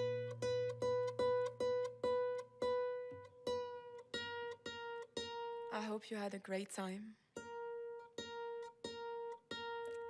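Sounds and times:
kora plucked notes: 0.0s - 5.8s.

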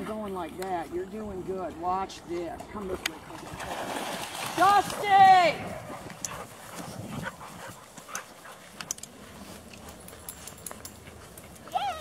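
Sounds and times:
faint rustles and clicks: 6.0s - 12.0s.

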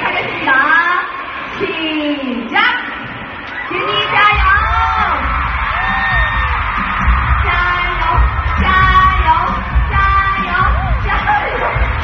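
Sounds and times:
crowd screaming: 3.1s - 12.0s
loud dance music with pulsing bass: 4.4s - 12.0s.

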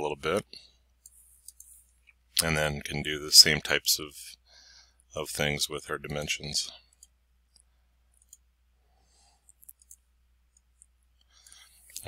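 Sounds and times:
low steady hum: 0.0s - 12.0s
computer mouse clicks: 1.0s - 1.7s, 6.9s - 8.5s, 9.4s - 12.0s.

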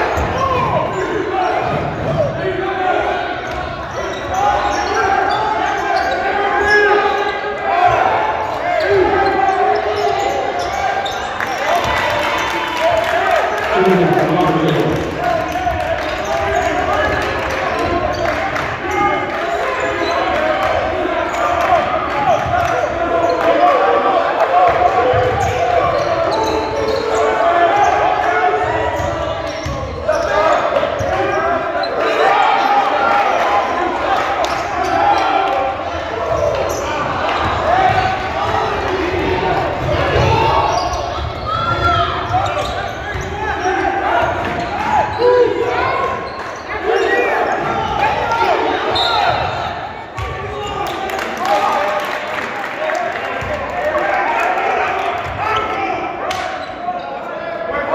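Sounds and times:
overlapping voices in gymnasium: 0.0s - 57.9s.

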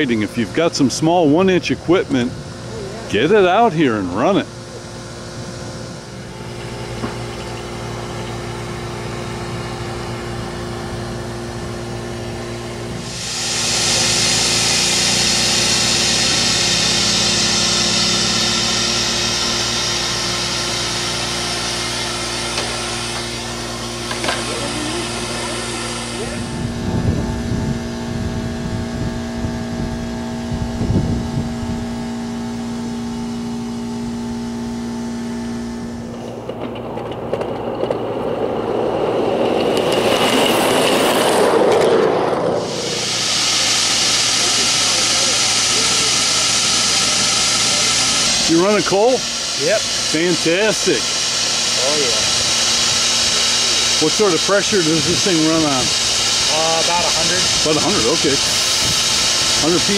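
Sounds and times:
loud steam hiss: 0.0s - 28.2s, 37.7s - 59.9s
low mechanical hum: 0.0s - 59.9s.

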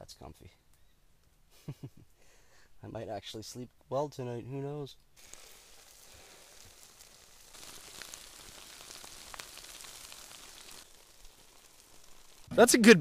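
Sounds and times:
small crackles: 5.0s - 12.7s
food sizzling on campfire coals: 5.1s - 13.0s.

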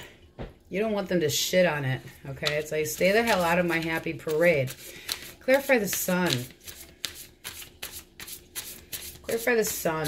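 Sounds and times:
cards being shuffled: 2.4s - 9.2s.

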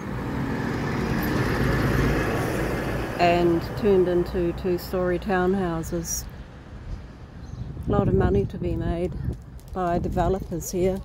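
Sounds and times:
garbage truck driving past: 0.0s - 4.6s.

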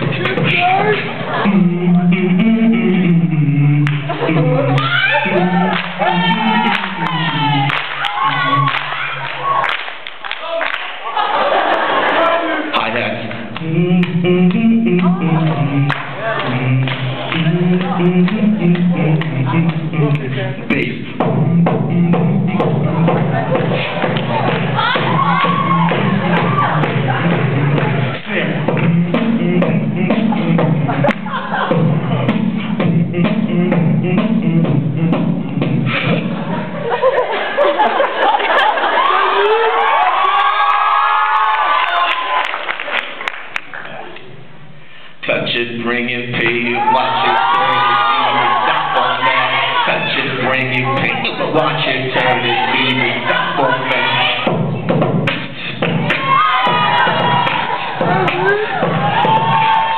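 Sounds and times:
beatboxer holding low notes: 0.0s - 9.2s, 13.2s - 36.5s
low bass hum: 0.0s - 9.2s, 13.6s - 36.7s.

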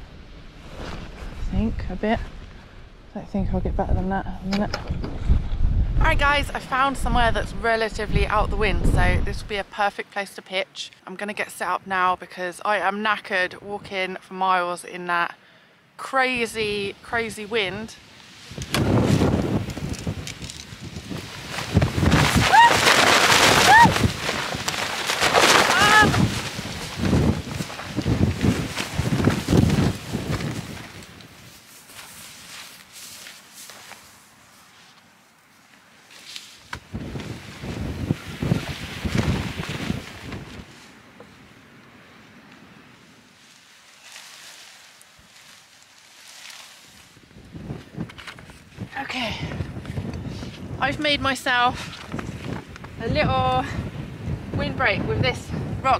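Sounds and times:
tent fabric flapping: 0.0s - 1.5s, 18.4s - 35.0s, 36.1s - 41.1s, 43.3s - 48.9s
strong wind on microphone: 0.0s - 9.7s, 18.5s - 24.7s, 25.3s - 31.5s, 36.8s - 40.8s, 47.2s - 55.9s.

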